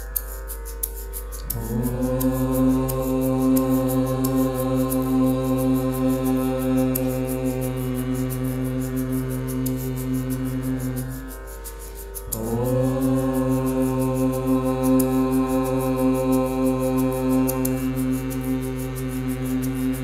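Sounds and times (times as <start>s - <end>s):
faint sustained drone: 0.0s - 20.0s
group of singers chanting: 1.4s - 11.2s, 12.3s - 20.0s.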